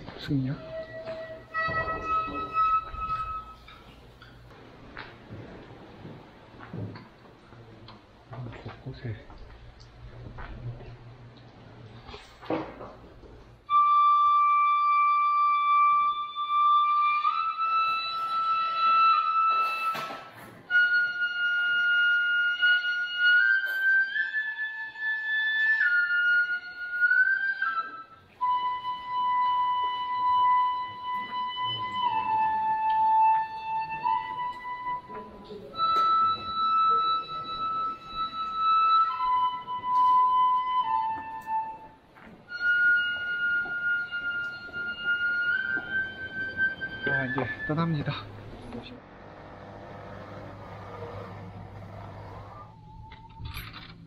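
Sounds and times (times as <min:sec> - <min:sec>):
wind instrument melody: 0:00.0 - 0:04.5, 0:13.6 - 0:53.9.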